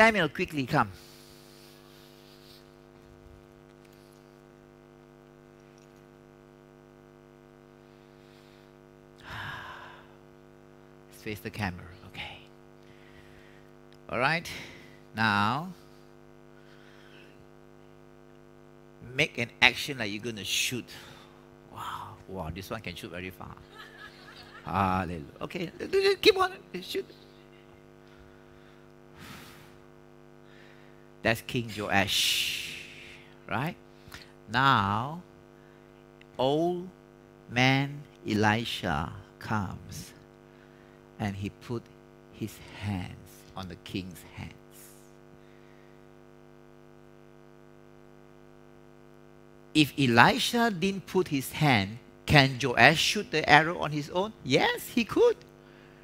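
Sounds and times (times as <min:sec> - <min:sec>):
steady electrical hum: 0:00.0 - 0:56.0.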